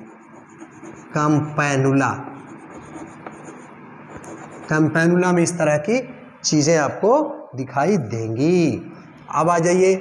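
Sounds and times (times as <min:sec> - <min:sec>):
chalk scratching on blackboard: 0:00.0 - 0:01.5, 0:02.3 - 0:04.9.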